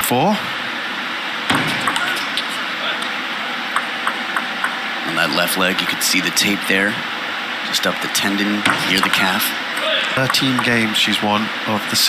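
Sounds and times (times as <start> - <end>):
arena background noise: 0.0 - 12.0
table tennis ball clicking: 3.7 - 4.8, 10.2 - 10.8.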